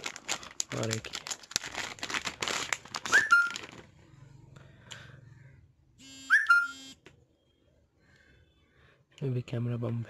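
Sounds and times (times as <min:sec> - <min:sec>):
whistle-like chirp: 0:03.1 - 0:03.6, 0:06.3 - 0:06.8.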